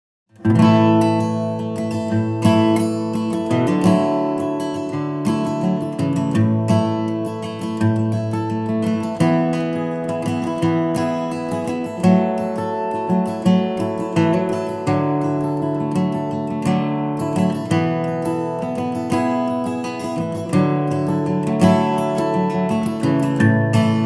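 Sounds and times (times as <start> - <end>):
acoustic guitar music: 0.3 - 24.0.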